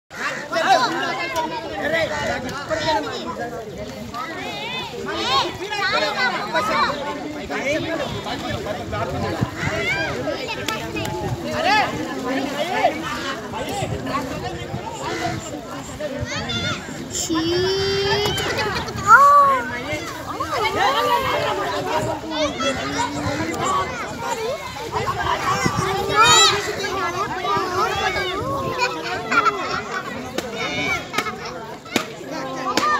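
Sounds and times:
people talking at once: 0:00.1 - 0:32.9.

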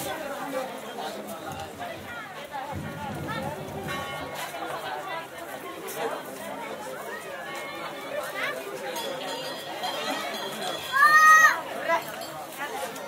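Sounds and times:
crowd chatter: 0:00.0 - 0:13.0.

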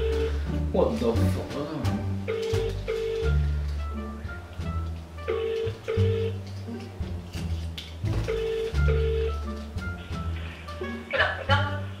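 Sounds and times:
telephone ringing tone: 0:00.0 - 0:00.4, 0:02.3 - 0:03.6, 0:05.3 - 0:06.4, 0:08.3 - 0:09.6.

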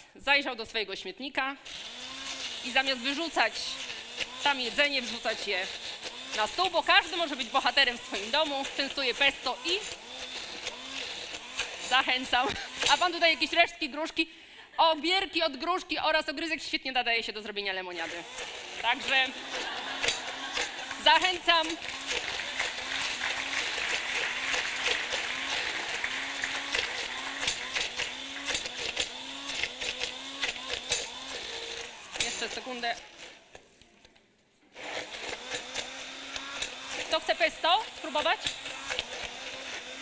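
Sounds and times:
immersion blender running: 0:01.6 - 0:14.3, 0:17.7 - 0:33.6, 0:34.7 - 0:40.0.

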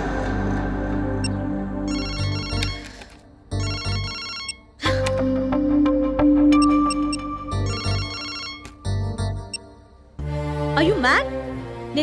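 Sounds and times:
background film music: 0:00.0 - 0:12.0
mobile phone ringtone: 0:01.9 - 0:04.8, 0:06.5 - 0:09.7.

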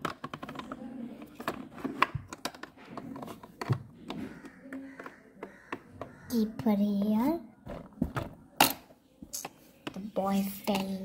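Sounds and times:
plastic toy parts clicking: 0:00.0 - 0:06.1.

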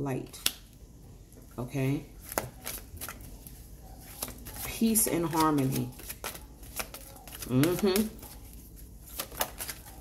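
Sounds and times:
cards being shuffled: 0:02.2 - 0:10.0.

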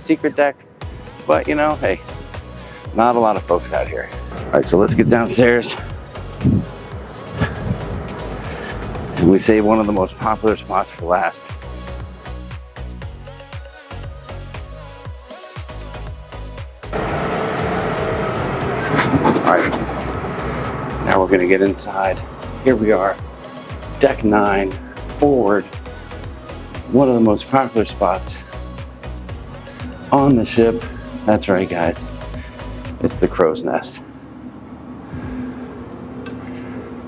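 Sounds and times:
elevator mechanical hum: 0:04.2 - 0:10.4, 0:16.9 - 0:26.8, 0:29.2 - 0:37.0.

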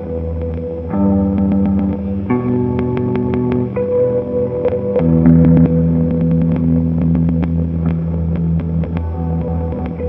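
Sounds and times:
electric guitar drone: 0:00.0 - 0:10.0.

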